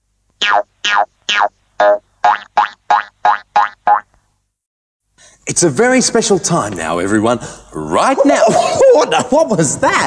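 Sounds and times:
cartoon boing: 0.4s - 4.0s.

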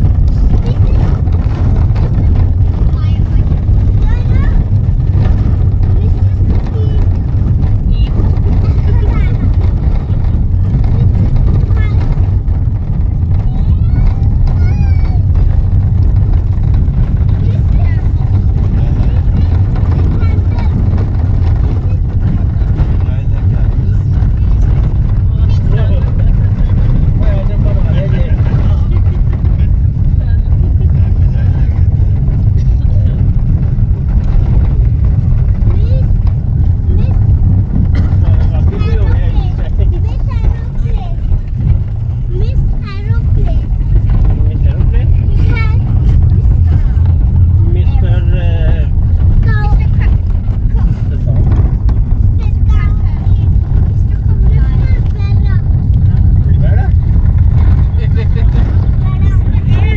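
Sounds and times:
faint voices talking: 0.0s - 59.9s
vehicle driving low rumble: 0.0s - 59.9s.

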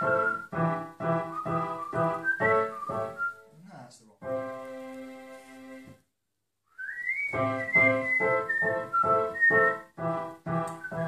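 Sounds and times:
digital piano chords: 0.0s - 3.2s, 4.2s - 5.9s, 7.3s - 11.0s
high whistle-like tone: 0.0s - 3.5s, 6.7s - 9.9s, 10.5s - 11.0s.

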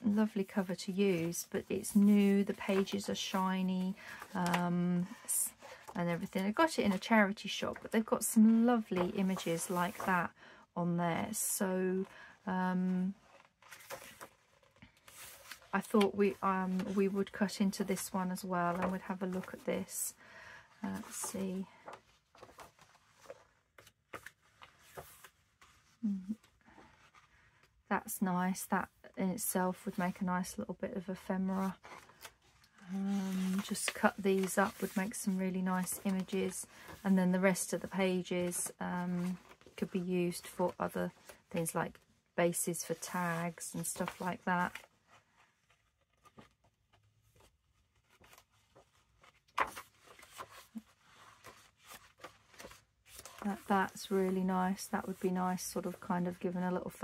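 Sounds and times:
book pages turning: 0.0s - 10.3s, 12.9s - 19.9s, 20.8s - 27.8s, 31.6s - 42.0s, 42.8s - 56.4s
person humming: 26.0s - 26.4s.

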